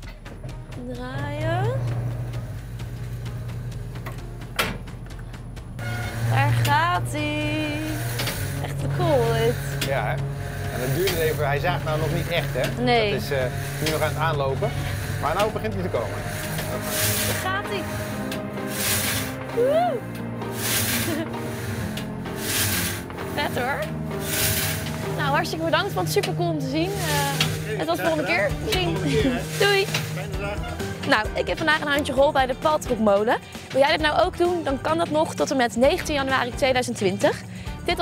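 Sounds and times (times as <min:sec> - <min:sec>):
machinery knocking: 0:00.0 - 0:19.4
background music: 0:00.0 - 0:38.0
sawmill machinery humming: 0:00.0 - 0:38.0
frame saw cutting log: 0:05.8 - 0:31.4.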